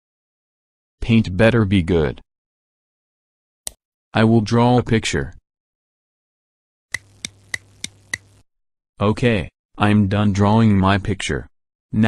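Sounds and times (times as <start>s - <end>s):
sharp ticks: 6.9s - 8.4s.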